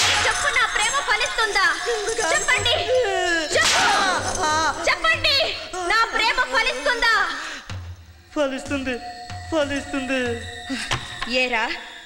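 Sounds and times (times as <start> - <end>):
whip cracking: 0.0 - 0.4, 3.6 - 4.2.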